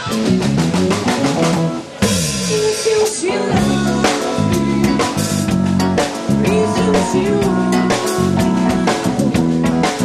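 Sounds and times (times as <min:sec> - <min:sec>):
electric keyboard: 0:00.0 - 0:02.7, 0:03.3 - 0:10.0
bass: 0:00.0 - 0:10.0
drum kit beat: 0:00.0 - 0:10.0
man singing: 0:02.4 - 0:09.4.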